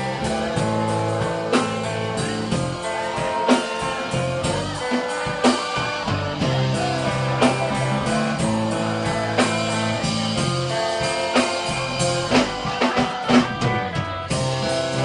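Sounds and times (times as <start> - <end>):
drums: 0.0 - 15.0
electric guitar chords: 0.0 - 15.0.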